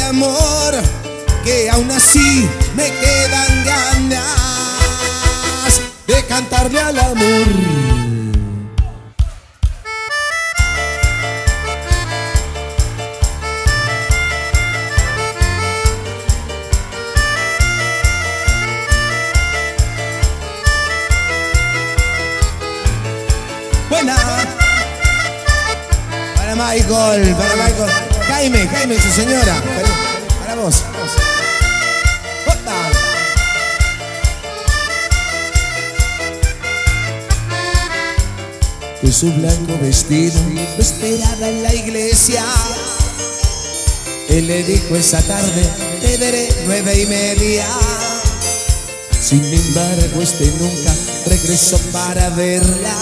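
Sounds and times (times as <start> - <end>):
drum break: 0.0 - 53.0
live band playing cumbia: 0.0 - 53.0.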